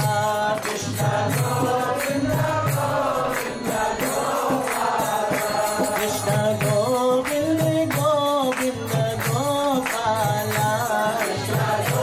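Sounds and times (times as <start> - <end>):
hand cymbals striking: 0.0 - 12.0
voices singing a mantra: 0.0 - 12.0.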